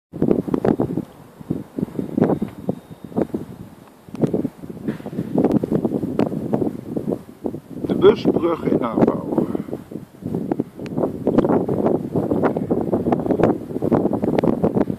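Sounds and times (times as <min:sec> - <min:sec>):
wind buffeting microphone: 0:00.1 - 0:14.9.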